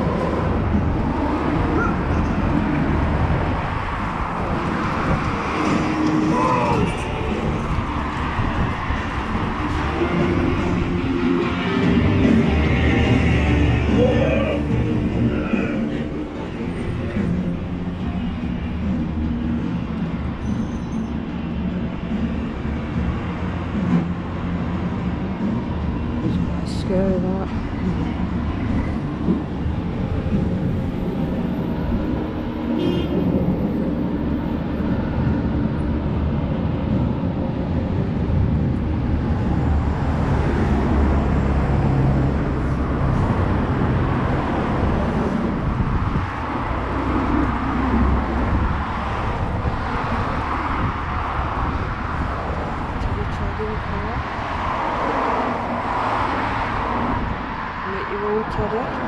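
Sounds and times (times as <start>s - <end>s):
wind buffeting microphone: 0.0s - 11.1s, 35.2s - 59.0s
road traffic passing: 0.0s - 59.0s.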